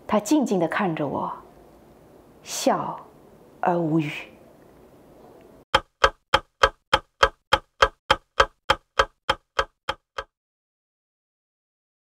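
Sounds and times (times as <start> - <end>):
mechanical ticking: 5.8 - 10.3.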